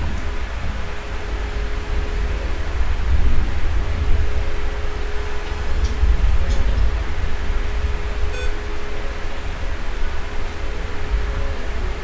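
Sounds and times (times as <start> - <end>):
low rumble and hiss: 0.0 - 12.0
thin constant hum: 0.0 - 12.0
short electronic beep: 8.3 - 8.6.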